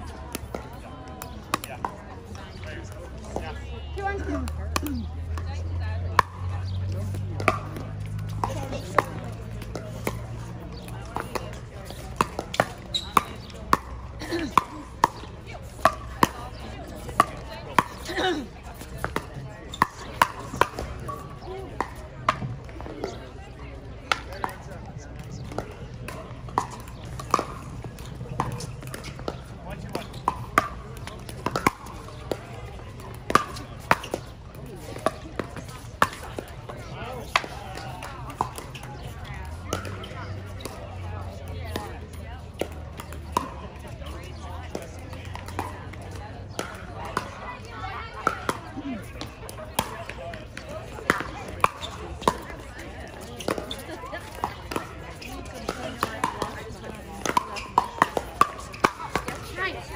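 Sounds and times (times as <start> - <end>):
people's voices: 0.0 - 59.9
paddles hitting plastic balls: 6.2 - 23.2, 25.2 - 40.8, 48.2 - 59.9.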